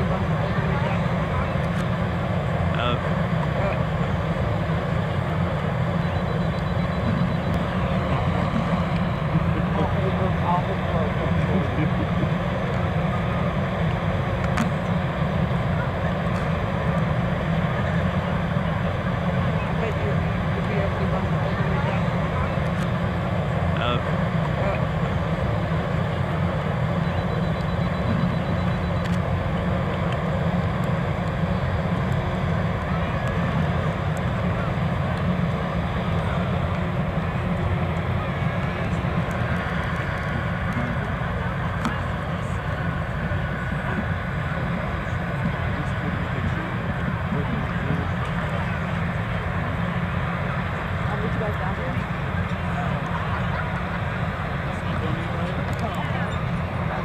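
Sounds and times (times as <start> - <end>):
diesel engines droning: 0.0 - 57.0.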